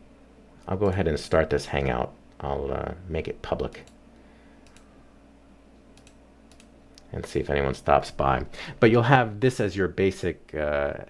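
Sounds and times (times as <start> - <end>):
low steady hum: 0.0 - 11.0
faint computer clicks: 4.6 - 4.9, 5.9 - 7.1.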